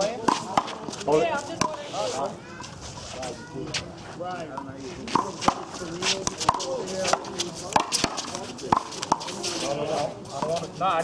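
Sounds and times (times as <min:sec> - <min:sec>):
players' voices: 0:00.0 - 0:11.0.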